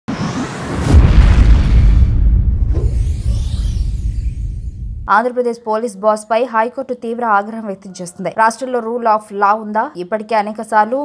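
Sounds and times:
noise swell: 0.0 - 5.1
low rumble: 0.1 - 5.1
deep boom: 0.3 - 5.1.

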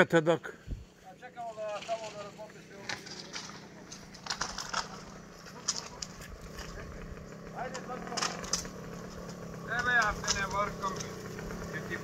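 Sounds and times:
steady low hum: 0.4 - 12.0.

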